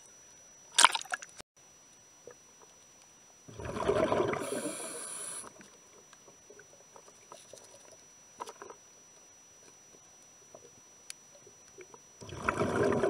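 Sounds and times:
underwater bubbling rush: 0:03.5 - 0:05.3, 0:12.2 - 0:13.0
hiss: 0:04.4 - 0:05.5.

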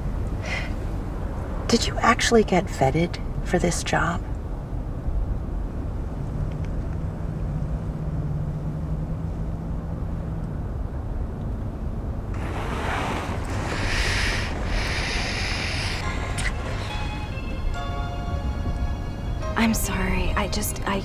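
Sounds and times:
car interior rumble: 0:00.0 - 0:19.0
traffic outside: 0:00.0 - 0:21.0
loud hiss: 0:12.4 - 0:16.6.

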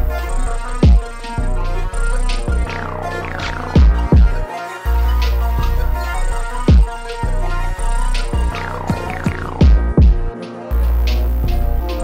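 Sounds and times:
hi-hats: 0:00.0 - 0:12.0
sustained synth melody: 0:00.0 - 0:12.0
sliding bass hits: 0:01.4 - 0:04.5, 0:06.6 - 0:12.0.

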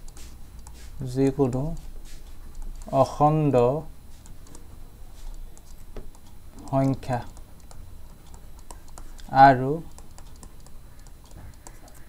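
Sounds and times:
man speaking: 0:01.0 - 0:01.8, 0:02.8 - 0:03.9, 0:06.6 - 0:07.3, 0:09.3 - 0:09.9.

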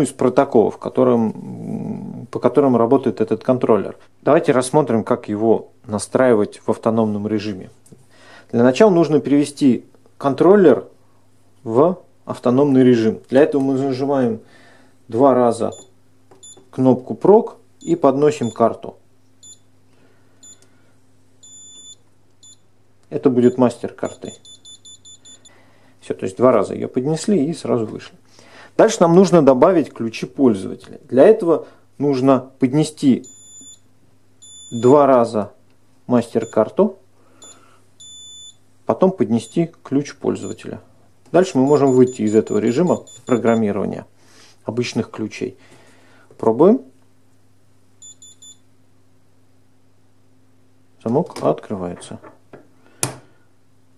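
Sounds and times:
faint steady hum: 0:00.0 - 0:53.9
card reader buzzer beeping: 0:15.7 - 0:16.6, 0:17.8 - 0:18.6, 0:19.4 - 0:19.7, 0:20.4 - 0:20.6, 0:21.4 - 0:22.7, 0:23.4 - 0:25.6, 0:33.3 - 0:33.8, 0:34.4 - 0:35.0, 0:37.4 - 0:38.6, 0:41.6 - 0:43.7, 0:48.0 - 0:48.6.

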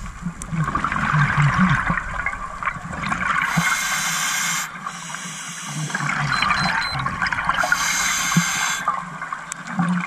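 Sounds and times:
underwater bubbles crackling: 0:00.0 - 0:10.0
hissing regulator breath: 0:03.4 - 0:06.1, 0:07.6 - 0:08.9.

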